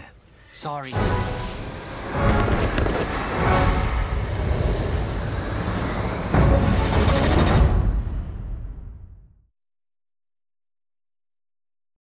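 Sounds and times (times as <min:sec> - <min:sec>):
film trailer score: 0:00.0 - 0:09.5
fireworks rockets and explosions: 0:01.0 - 0:05.3.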